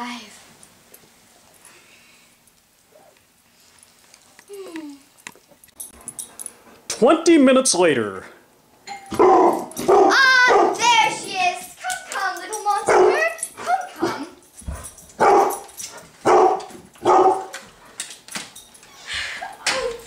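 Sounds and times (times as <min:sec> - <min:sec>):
dog barking: 0:09.1 - 0:10.9, 0:12.9 - 0:14.2, 0:15.2 - 0:15.6, 0:16.2 - 0:17.6
dog yelping: 0:09.1 - 0:11.2, 0:15.2 - 0:15.6, 0:16.2 - 0:17.5.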